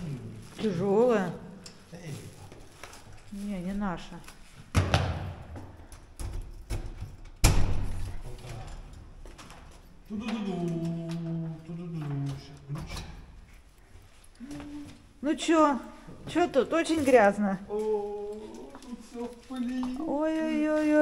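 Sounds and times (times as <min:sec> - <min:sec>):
door thuds with echo: 0:04.8 - 0:05.7, 0:07.4 - 0:08.2.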